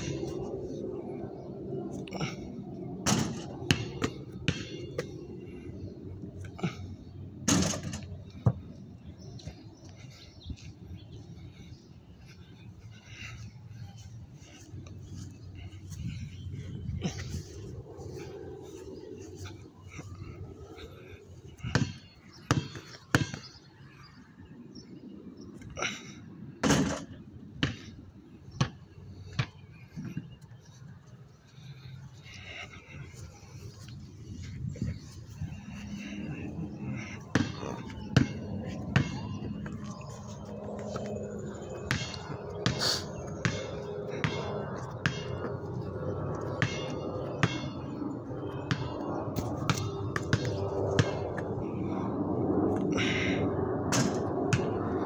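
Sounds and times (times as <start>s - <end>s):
steady background hum: 0.0s - 55.0s
basketball bouncing on concrete: 3.7s - 5.1s, 21.7s - 23.5s, 37.3s - 39.4s, 41.8s - 42.8s, 43.4s - 45.4s, 46.6s - 47.8s, 48.7s - 51.2s.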